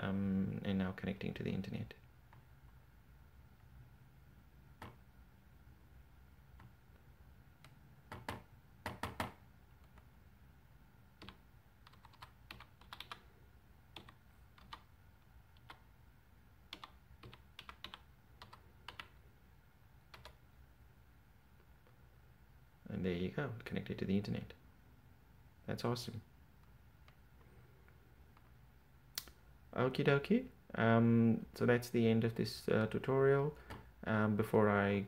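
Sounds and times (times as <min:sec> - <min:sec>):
computer keyboard typing: 0:07.6 - 0:10.0, 0:11.2 - 0:13.3, 0:13.9 - 0:14.9, 0:15.5 - 0:15.9, 0:16.7 - 0:19.2, 0:20.1 - 0:20.4.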